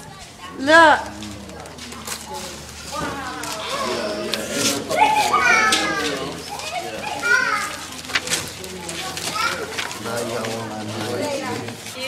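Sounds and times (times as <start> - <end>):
young children talking and calling: 0.0 - 12.0
paper rustling: 1.0 - 12.0.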